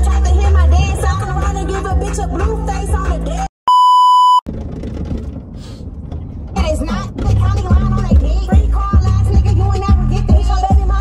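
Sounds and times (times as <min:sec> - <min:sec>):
music: 0:00.0 - 0:03.5, 0:06.6 - 0:11.0
electronic censor bleep: 0:03.7 - 0:04.4.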